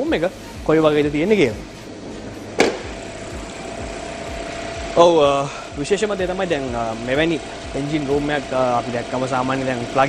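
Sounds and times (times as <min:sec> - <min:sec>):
faint steady hum: 0:01.4 - 0:10.0
car bonnet latch click: 0:02.6 - 0:03.0.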